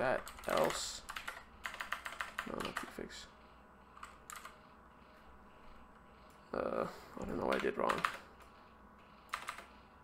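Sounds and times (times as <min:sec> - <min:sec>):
computer keyboard key presses: 0:00.2 - 0:02.9, 0:09.3 - 0:09.7.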